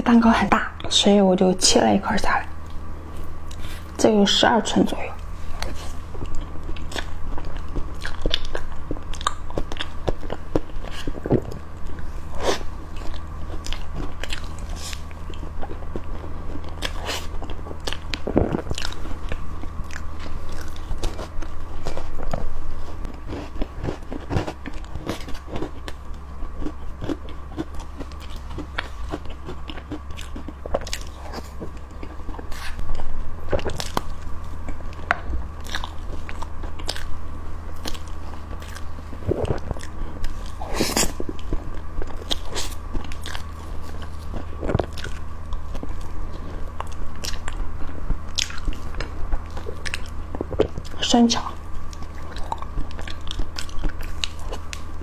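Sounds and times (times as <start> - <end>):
eating cake close up: 0.0 - 55.0
low hum: 0.0 - 55.0.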